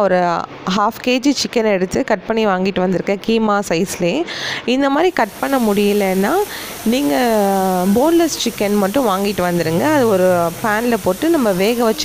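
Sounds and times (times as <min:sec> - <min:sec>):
person talking: 0:04.0 - 0:12.0.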